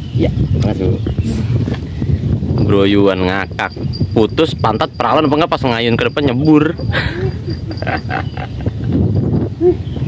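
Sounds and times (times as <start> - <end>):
man laughing hard: 6.8 - 9.0.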